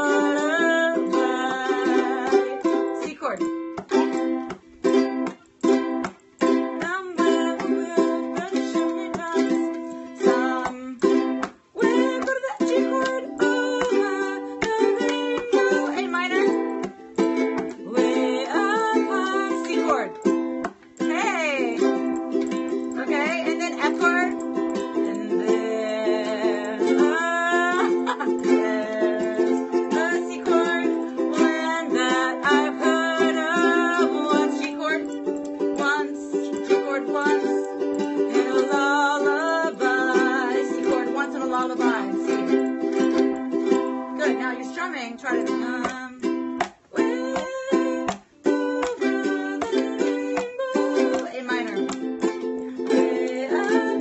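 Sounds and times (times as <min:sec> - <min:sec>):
woman singing: 0:00.0 - 0:05.3, 0:05.9 - 0:20.4, 0:21.0 - 0:54.0
ukulele strumming: 0:00.0 - 0:54.0.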